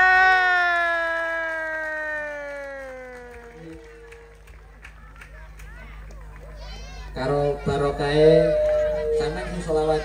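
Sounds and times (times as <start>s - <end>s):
person singing long held note: 8.2s - 10.0s.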